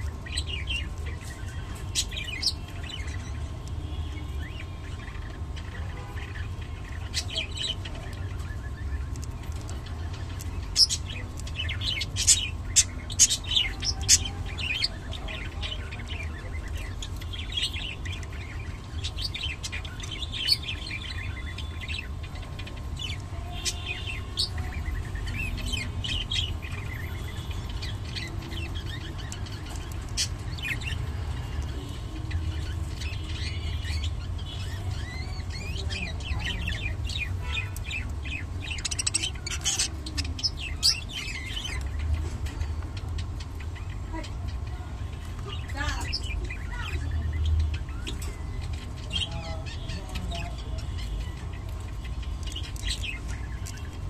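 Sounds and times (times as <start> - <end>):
budgerigars chirping: 0.0 - 44.6.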